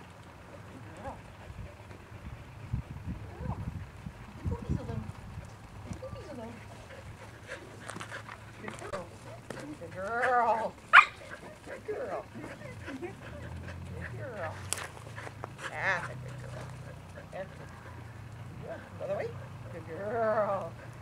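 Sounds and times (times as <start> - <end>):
dog bark: 10.9 - 11.3.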